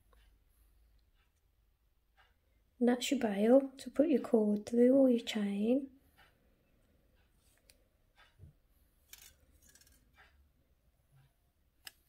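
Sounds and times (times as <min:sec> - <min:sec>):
wire handling rustles and ticks: 0:09.0 - 0:10.4.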